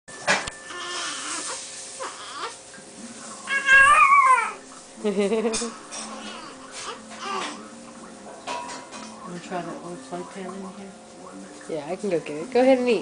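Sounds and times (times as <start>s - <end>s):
newborn babies crying: 0.6s - 2.6s, 3.5s - 4.6s, 5.7s - 7.6s.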